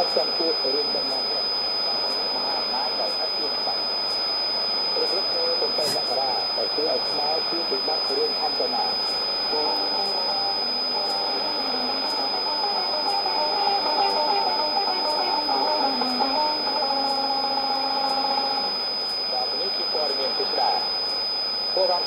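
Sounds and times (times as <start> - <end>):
radio music through speaker: 0.0 - 22.0
radio reception hiss: 0.0 - 22.0
steady high whistle: 0.0 - 22.0.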